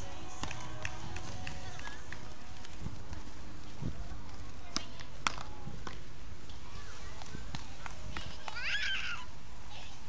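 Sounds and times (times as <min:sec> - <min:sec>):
faint distant voices: 0:00.0 - 0:10.0
wind rumble on microphone: 0:00.7 - 0:06.0.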